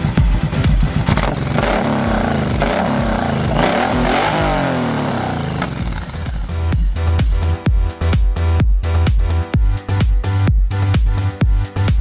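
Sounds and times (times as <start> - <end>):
motorcycle engine revving: 0.0 - 7.7
dance music: 0.0 - 12.0.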